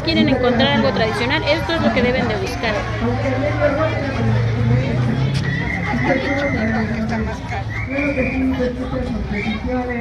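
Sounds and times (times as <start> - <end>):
crowd chatter: 0.0 - 10.0
people talking indistinctly: 0.0 - 10.0.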